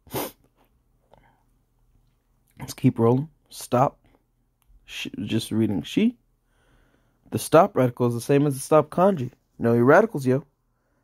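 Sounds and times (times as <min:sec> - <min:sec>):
man's sharp burst of breath: 0:00.0 - 0:00.5.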